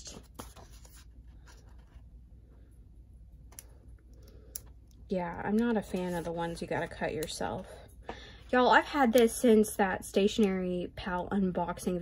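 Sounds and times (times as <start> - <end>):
paper sticker sheet rustling: 0.0 - 2.2, 5.5 - 7.3.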